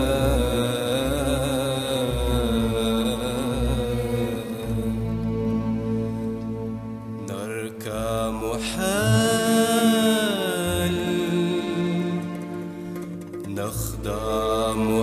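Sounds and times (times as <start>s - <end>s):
low drone: 0.0s - 15.0s
wavering instrumental melody: 8.8s - 15.0s.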